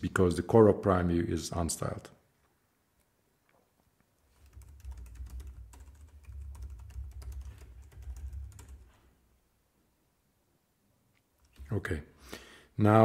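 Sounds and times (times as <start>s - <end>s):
typing on computer keyboard: 4.3s - 9.0s.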